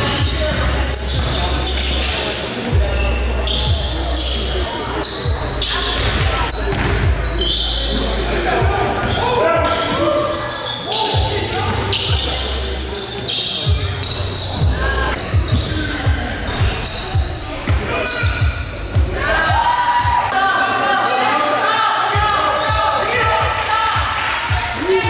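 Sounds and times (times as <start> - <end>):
players' voices and shouts: 0.0 - 25.0.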